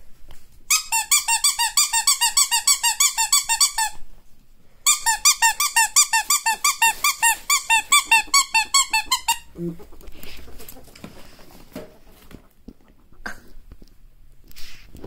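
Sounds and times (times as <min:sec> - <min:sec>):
ferret squeaky chirps: 0:04.9 - 0:09.5.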